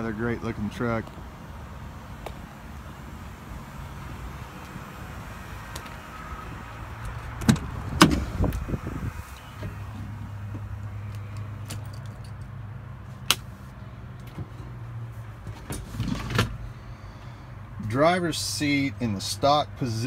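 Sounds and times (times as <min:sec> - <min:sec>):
truck door clunks: 0:07.0 - 0:08.7.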